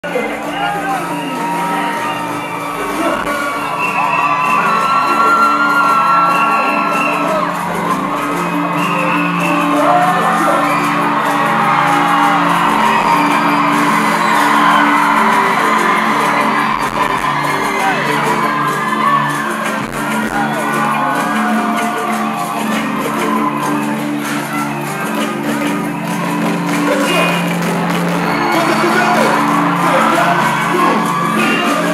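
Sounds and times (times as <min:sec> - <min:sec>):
live band with singing: 0:00.0 - 0:31.9
voices whooping and shouting: 0:00.1 - 0:31.9.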